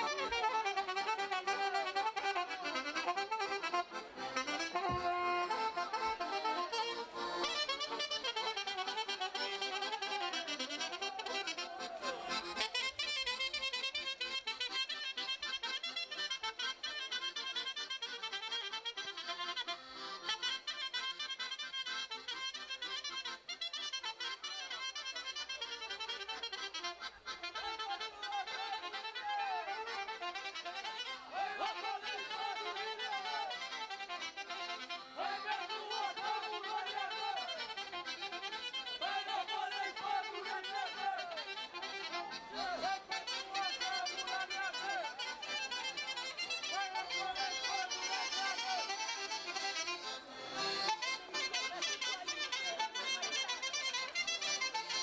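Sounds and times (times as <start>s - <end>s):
instrumental folk dance music: 0.0s - 55.0s.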